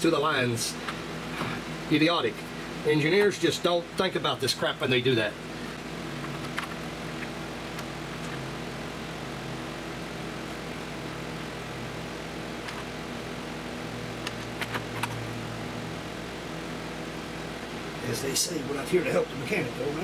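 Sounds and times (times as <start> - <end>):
machine hum: 0.0 - 20.0.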